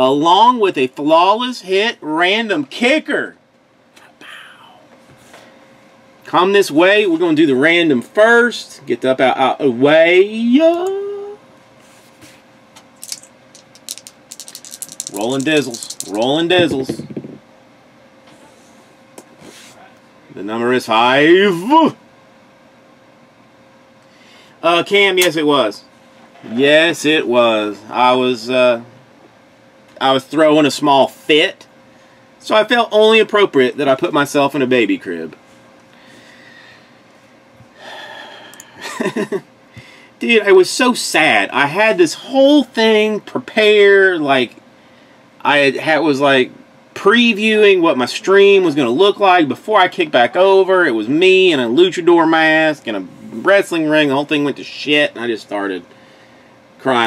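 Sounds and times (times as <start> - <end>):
dice rattling in hands: 13.0 - 17.1
man breathing in: 24.1 - 24.6, 35.9 - 37.1, 37.7 - 38.8, 39.7 - 40.2, 55.9 - 56.6
man sighing: 37.8 - 38.8.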